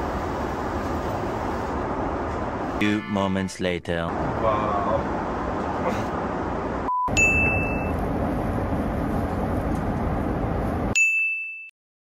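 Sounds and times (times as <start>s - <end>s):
airliner cabin hum: 5.2s - 11.0s
bell-like dings: 7.2s - 7.9s, 11.0s - 11.7s.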